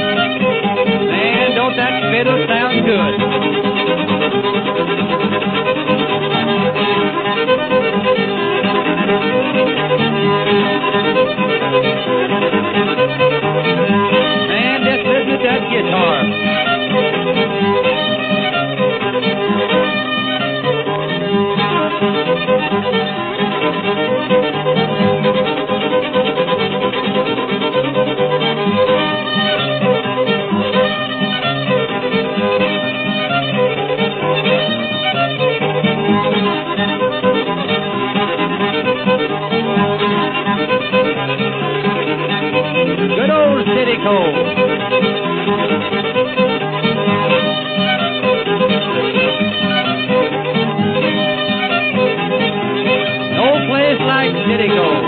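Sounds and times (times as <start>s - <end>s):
fiddle tune: 0.0s - 55.0s
string-band rhythmic backing: 0.0s - 55.0s.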